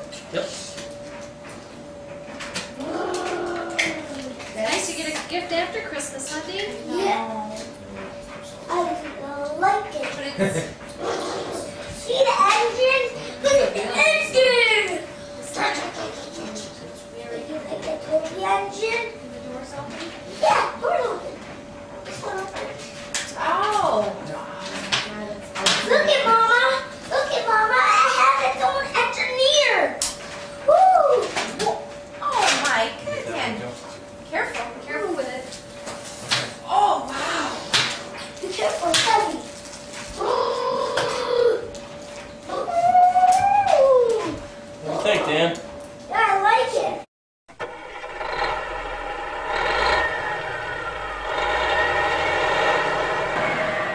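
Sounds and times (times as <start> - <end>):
droning hum: 0.0 - 53.9
children calling and squealing: 2.8 - 4.4, 26.0 - 29.9, 40.2 - 41.7, 42.5 - 44.4.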